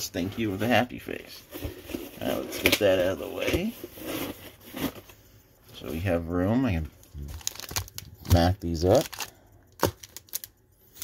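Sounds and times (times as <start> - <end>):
card pack wrappers rustling: 7.1 - 11.0.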